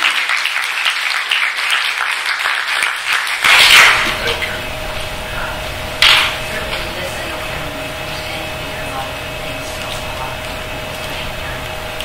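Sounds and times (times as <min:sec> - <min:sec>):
room hum and hiss: 0:00.0 - 0:12.0
constant mid-pitched tone: 0:03.9 - 0:12.0.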